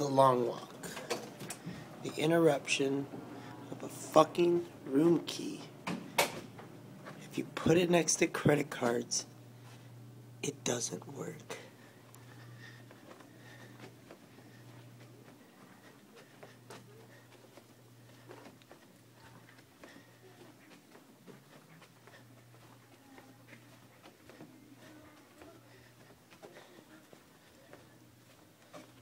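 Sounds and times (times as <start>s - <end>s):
low steady hum: 0.0s - 29.0s
faint footsteps on carpet: 3.1s - 10.0s, 11.5s - 29.0s.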